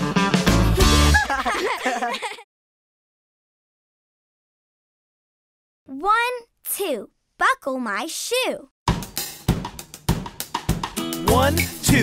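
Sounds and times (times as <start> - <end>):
drum kit beat: 0.0 - 1.5, 8.9 - 12.0.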